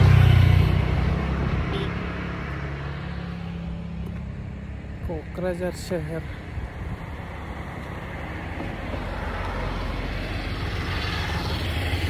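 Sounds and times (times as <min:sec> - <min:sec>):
vehicle engine and tyres: 0:00.0 - 0:12.0.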